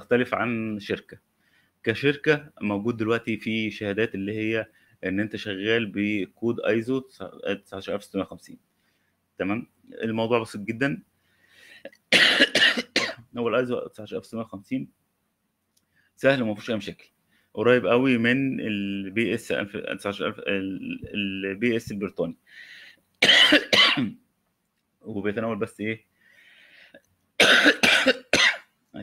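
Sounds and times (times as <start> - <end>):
faint intake of breath: 1.4 - 1.8, 11.2 - 11.9, 22.5 - 23.0, 26.1 - 27.0
man coughing: 12.1 - 13.2, 23.2 - 24.2, 27.4 - 28.7.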